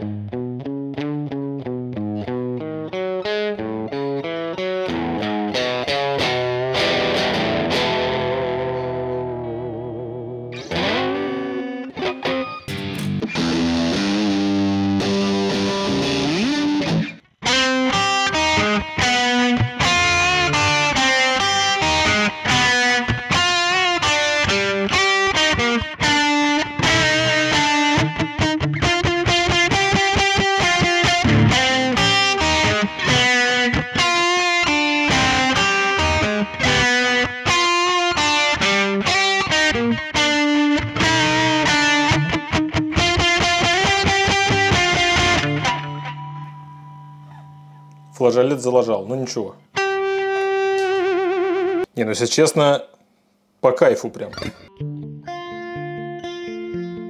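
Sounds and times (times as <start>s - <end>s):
electric guitar licks and chords: 0.0s - 48.2s, 49.6s - 51.9s, 54.4s - 57.0s.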